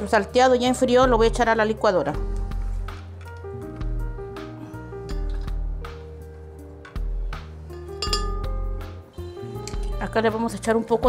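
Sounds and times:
background music: 0:00.0 - 0:11.0
utensil clinking on pan and glass: 0:07.7 - 0:08.5.

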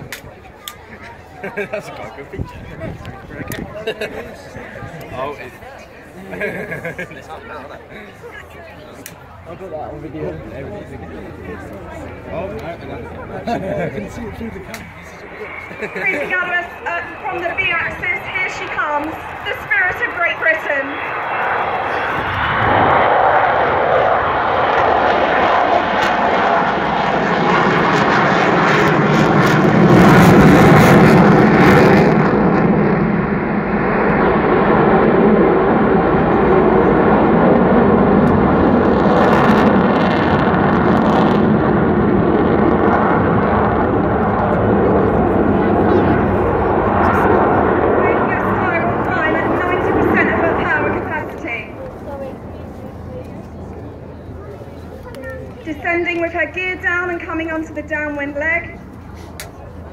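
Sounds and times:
jet aircraft fly-past: 0:00.0 - 0:59.9.

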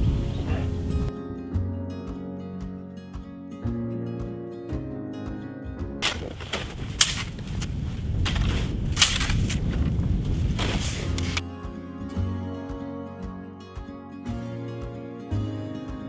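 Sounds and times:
acoustic guitar music: 0:00.0 - 0:07.2, 0:10.8 - 0:16.0
shovel blades striking: 0:06.0 - 0:09.7, 0:10.6 - 0:11.4
snow shovels scraping snow: 0:06.0 - 0:11.4.

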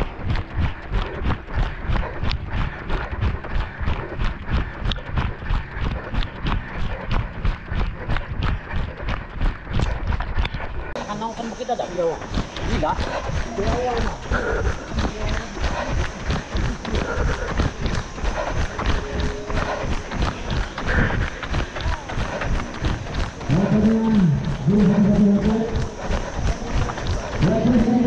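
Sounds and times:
footfalls on paved road: 0:12.3 - 0:28.0.

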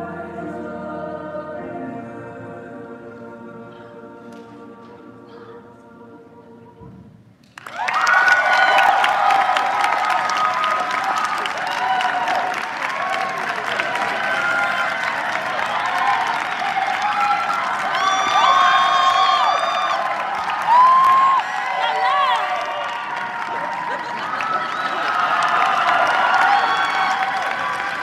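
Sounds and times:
choir singing: 0:00.0 - 0:07.0
audience applause: 0:07.4 - 0:28.0
whoops and cheers: 0:07.6 - 0:28.0.

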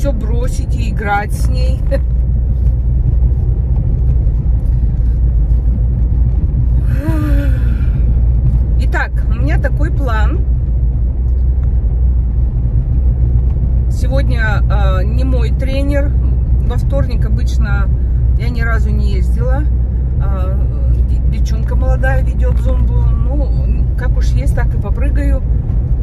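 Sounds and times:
car cabin road noise: 0:00.0 - 0:26.0.

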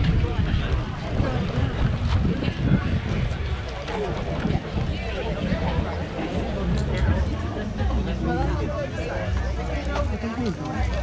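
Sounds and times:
wind buffeting microphone: 0:00.0 - 0:09.4
faint voices: 0:00.0 - 0:11.0.

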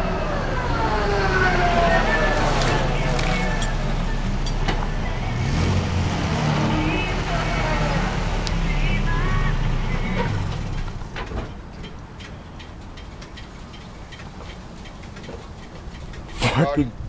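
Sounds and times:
truck engine rumble: 0:00.0 - 0:17.0
vehicles driving past: 0:00.0 - 0:17.0.

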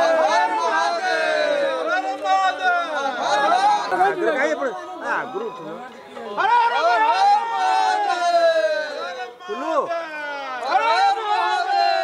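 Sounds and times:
men calling out and chanting: 0:00.0 - 0:12.0.

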